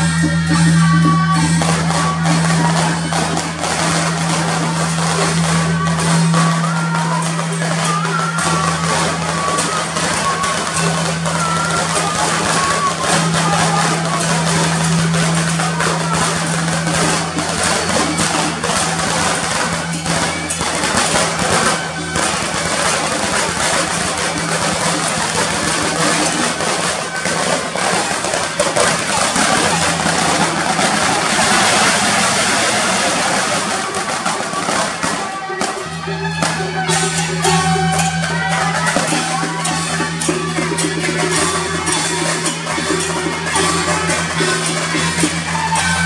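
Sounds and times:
drum beating: 0.0 - 46.0
hand cymbals clashing: 0.0 - 46.0
shawms playing: 0.0 - 46.0.

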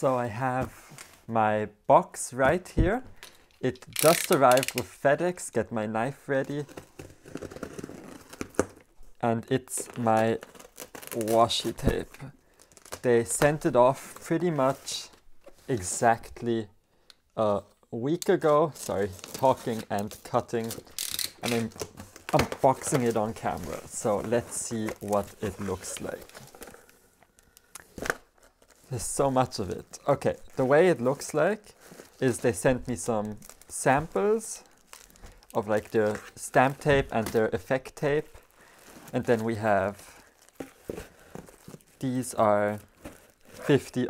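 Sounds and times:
plastic wrapping crinkling: 9.7 - 14.8, 18.6 - 44.0
cardboard box rustling: 40.4 - 42.0, 42.8 - 43.8.

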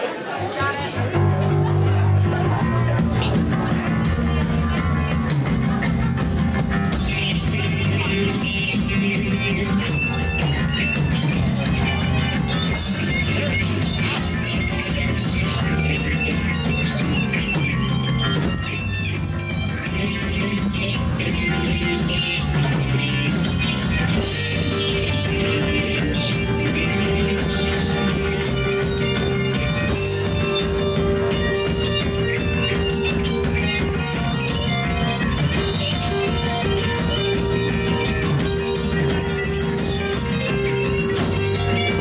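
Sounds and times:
live rock band playing: 0.3 - 42.0.

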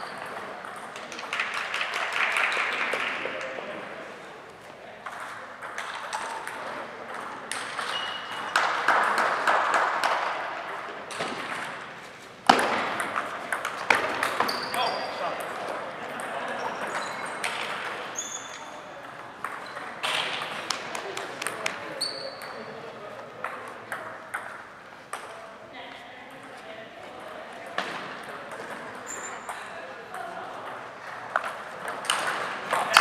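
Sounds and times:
chatter of many voices: 2.5 - 8.6, 10.0 - 33.0
table tennis balls clicking: 5.0 - 11.8, 12.5 - 18.1, 19.0 - 22.6, 23.4 - 25.3, 28.2 - 33.0.

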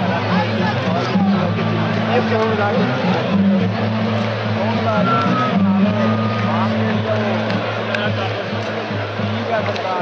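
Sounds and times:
live band over loudspeakers: 0.0 - 10.0
nearby crowd voices: 0.0 - 10.0.

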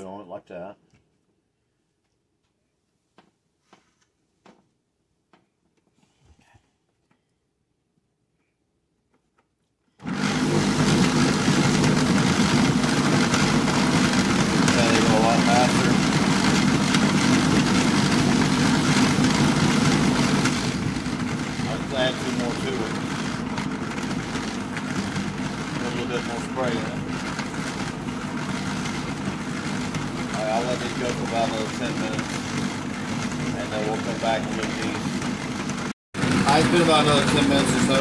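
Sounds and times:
car buffer running in bucket: 10.0 - 38.0.

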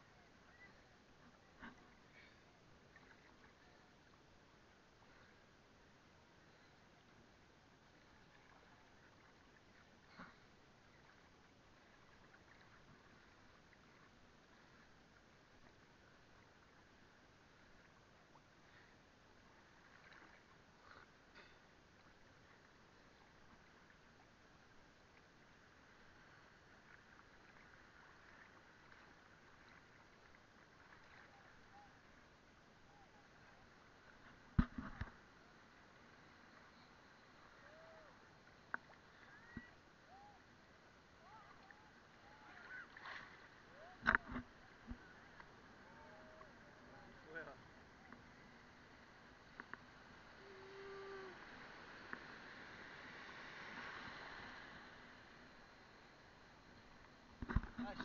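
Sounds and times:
small waves: 0.0 - 58.0
surf washing: 41.2 - 56.8.

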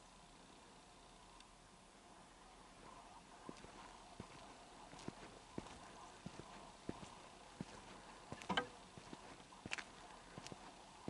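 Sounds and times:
footsteps on dirt road: 2.8 - 11.0.

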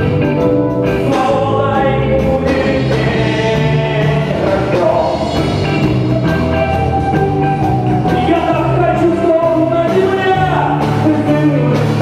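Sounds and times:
drums: 0.0 - 12.0
guitar: 0.0 - 12.0
man singing long notes: 1.0 - 12.0.

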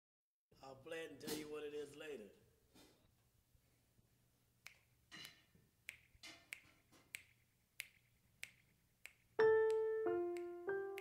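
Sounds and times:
sharp snapping clicks: 4.6 - 11.0
piano music: 9.4 - 11.0.

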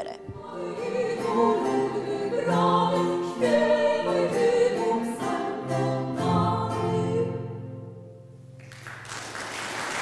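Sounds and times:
voices singing in several parts: 0.0 - 7.8.

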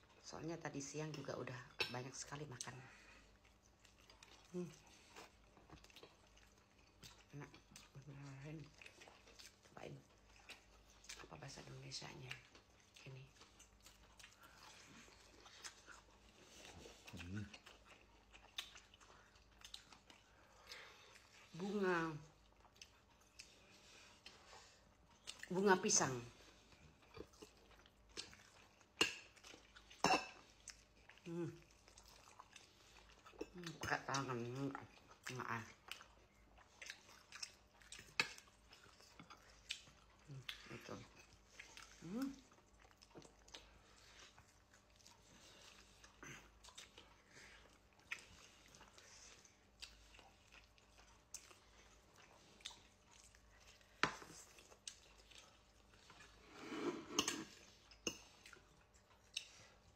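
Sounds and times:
soft chewing: 0.0 - 59.9
wet mouth clicks and smacks: 37.3 - 38.5.

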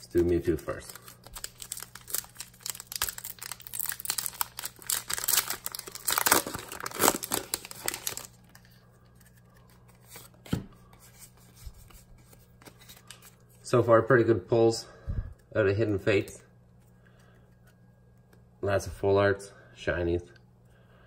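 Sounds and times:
foil wrapper tearing and crinkling: 0.1 - 8.6.

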